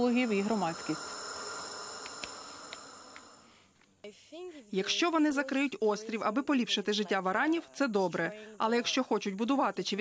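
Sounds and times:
insects droning: 0:00.0 - 0:03.7
faint hiss of ambience: 0:00.0 - 0:10.0
faint clicks: 0:02.0 - 0:03.9.

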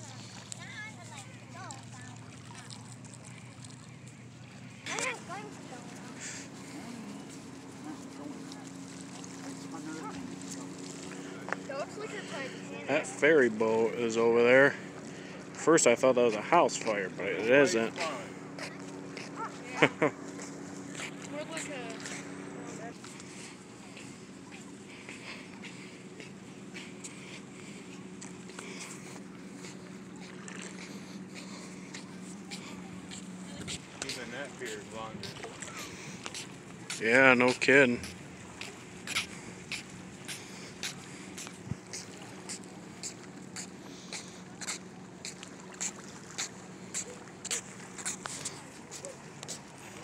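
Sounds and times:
low hum: 0:00.0 - 0:50.0
open-air background noise: 0:00.0 - 0:50.0
indistinct talking: 0:04.5 - 0:13.8, 0:16.2 - 0:50.0
footsteps on concrete: 0:29.0 - 0:50.0.

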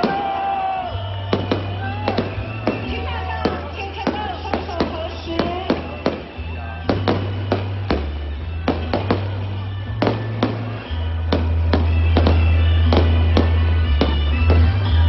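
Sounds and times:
fireworks banging: 0:00.0 - 0:15.0
loud music with deep bass: 0:01.2 - 0:15.0.

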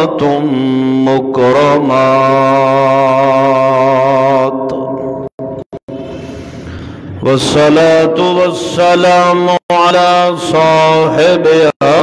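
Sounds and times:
man chanting melodically: 0:00.0 - 0:05.6, 0:07.1 - 0:12.0.

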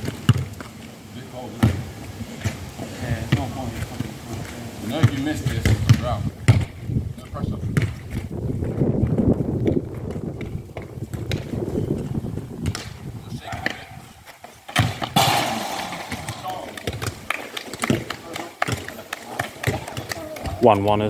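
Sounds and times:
people talking: 0:02.8 - 0:06.3, 0:15.6 - 0:17.1, 0:17.8 - 0:21.0
football kicked hard: 0:05.5 - 0:06.8, 0:07.6 - 0:13.8, 0:14.7 - 0:18.1.

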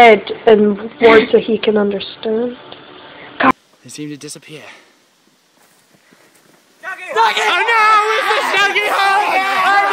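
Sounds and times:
young men yelling: 0:06.8 - 0:09.9.

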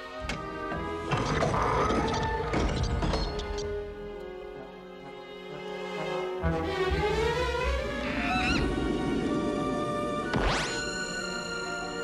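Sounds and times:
orchestral film music: 0:00.0 - 0:12.0.

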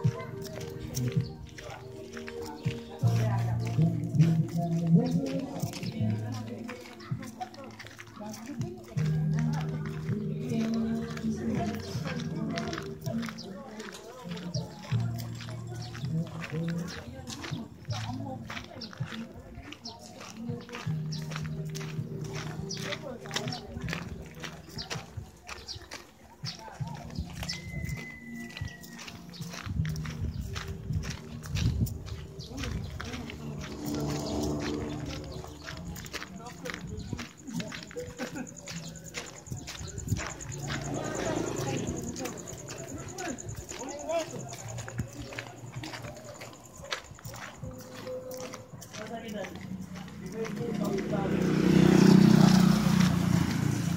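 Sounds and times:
footsteps on gravel: 0:00.0 - 0:53.9
people talking: 0:00.0 - 0:53.9.

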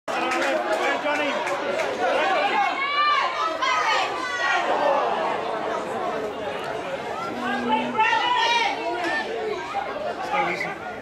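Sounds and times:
people talking at once: 0:00.1 - 0:11.0.

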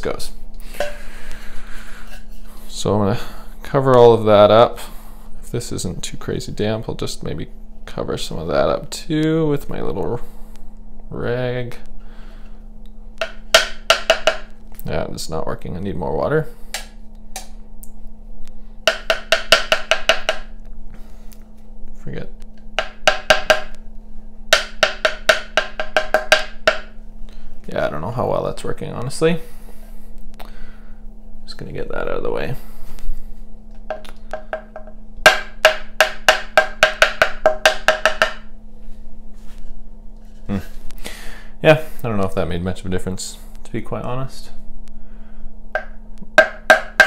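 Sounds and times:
paintbrush tapping with wooden ring: 0:13.2 - 0:14.6, 0:18.9 - 0:20.6, 0:22.8 - 0:23.8, 0:24.5 - 0:27.0, 0:33.9 - 0:38.5, 0:45.8 - 0:47.0.

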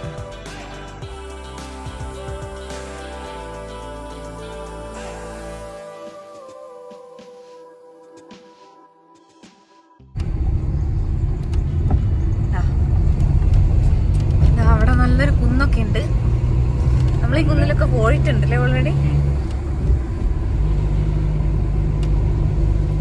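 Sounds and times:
car engine and road noise: 0:10.1 - 0:23.0.

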